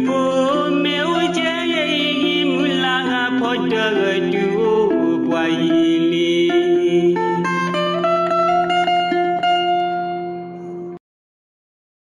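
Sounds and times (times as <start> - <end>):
song with sustained melodic notes: 0.0 - 11.0.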